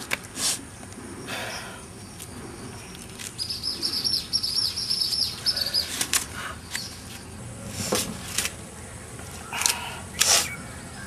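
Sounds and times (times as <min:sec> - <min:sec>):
small bird chirping: 0:01.5 - 0:06.0.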